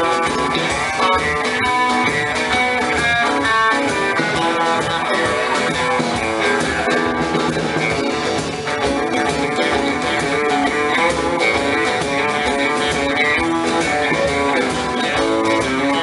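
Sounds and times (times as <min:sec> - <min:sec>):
drum kit: 0:00.0 - 0:16.0
electric and acoustic guitars: 0:00.0 - 0:16.0
upright double bass: 0:00.0 - 0:16.0.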